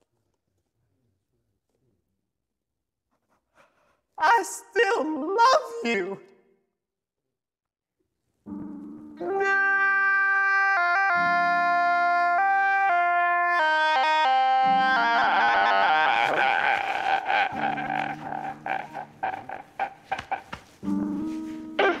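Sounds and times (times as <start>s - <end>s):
man wailing through autotune: 9.2s - 20.4s.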